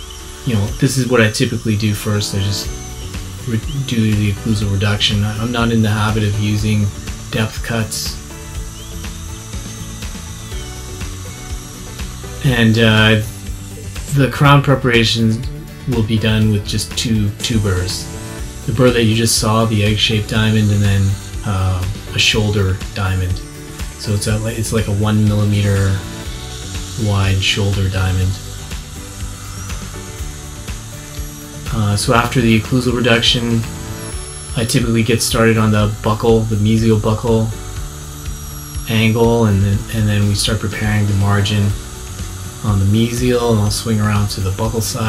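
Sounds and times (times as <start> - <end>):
background music: 0.0 - 45.0
dental drill whining: 0.0 - 45.0.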